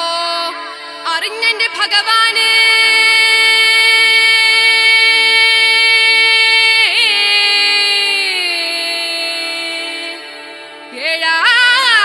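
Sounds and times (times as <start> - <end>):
woman singing folk melody: 0.0 - 10.3, 10.9 - 12.0.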